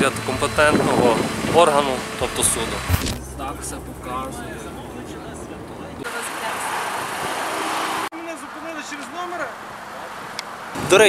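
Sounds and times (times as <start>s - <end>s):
car road noise: 0.0s - 11.0s.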